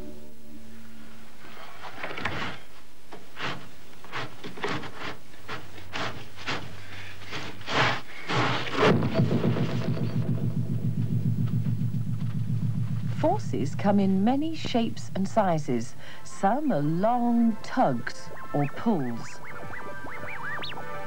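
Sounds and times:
electronic music with pulsing beat: 0:08.9 - 0:15.7, 0:17.9 - 0:21.0.

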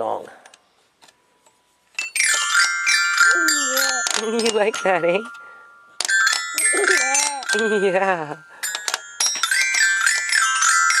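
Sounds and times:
toy glockenspiel notes ringing: 0:02.0 - 0:11.0.

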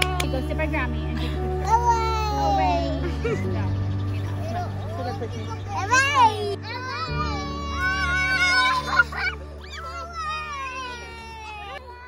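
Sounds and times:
young children's voices at play: 0:01.1 - 0:12.0
child's high-pitched squeal: 0:06.0 - 0:12.0.

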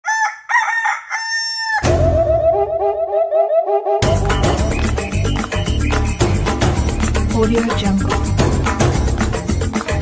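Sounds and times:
rooster crowing: 0:00.0 - 0:02.0.

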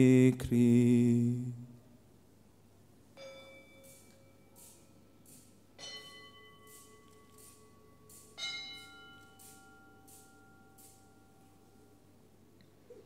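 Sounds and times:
altar bell ringing: 0:03.1 - 0:12.1.

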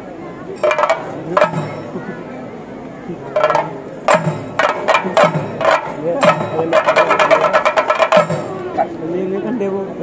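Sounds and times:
drums beaten with sticks: 0:00.6 - 0:02.1, 0:03.4 - 0:08.9.

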